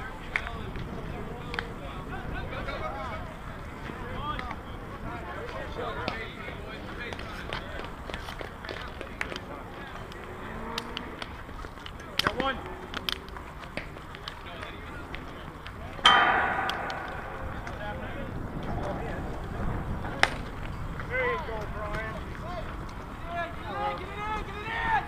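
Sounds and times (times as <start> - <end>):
distant players chatting: 0.0 - 25.0
loud ringing clang: 16.1 - 18.7.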